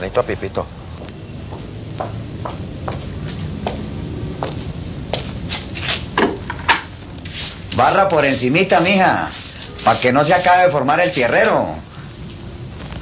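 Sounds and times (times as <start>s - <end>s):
broom sweeping a floor: 7.1s - 12.2s.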